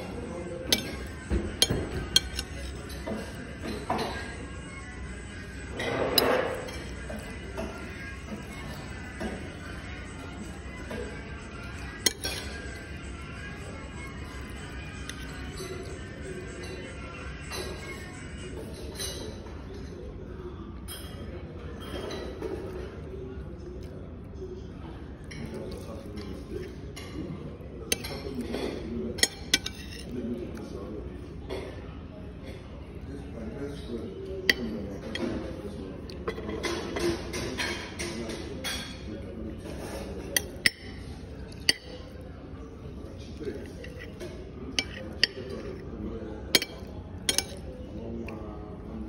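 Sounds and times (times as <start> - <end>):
spoon scraping plate: 0.7 - 3.4, 5.8 - 7.2, 27.9 - 30.2, 39.6 - 42.2, 43.2 - 45.9, 46.5 - 47.7
spoon clinking on plate: 0.7 - 4.3, 5.8 - 7.7, 11.7 - 12.7, 27.9 - 30.1, 39.8 - 42.2, 43.4 - 45.8, 46.5 - 47.7.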